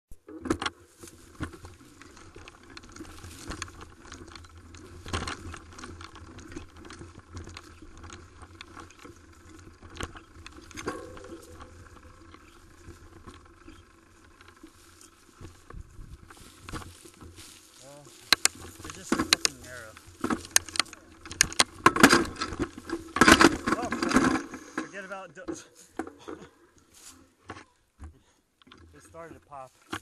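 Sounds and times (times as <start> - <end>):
bike tyres rumbling on dirt: 0.2 - 25.0
bike frame and chain rattling: 0.3 - 30.0.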